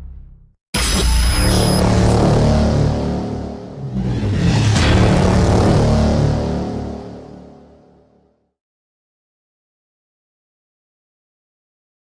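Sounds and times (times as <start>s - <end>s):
rushing swell: 2.8s - 7.4s.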